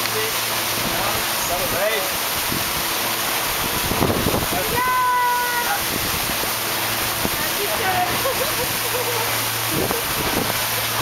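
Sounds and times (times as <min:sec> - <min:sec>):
water rushing past a motorboat: 0:00.0 - 0:11.0
wind buffeting microphone: 0:00.8 - 0:08.9, 0:09.6 - 0:11.0.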